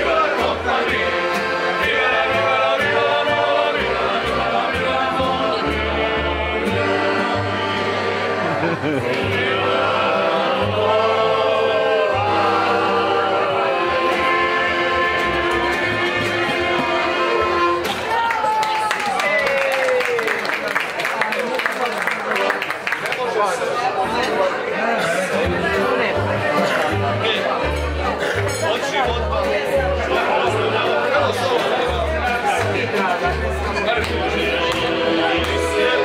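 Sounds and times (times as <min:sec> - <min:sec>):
double bass plucking: 0:00.0 - 0:17.9, 0:25.3 - 0:36.0
acoustic band playing: 0:00.0 - 0:18.4, 0:22.1 - 0:22.9, 0:23.6 - 0:36.0
room chatter: 0:00.0 - 0:36.0
voices: 0:20.5 - 0:36.0.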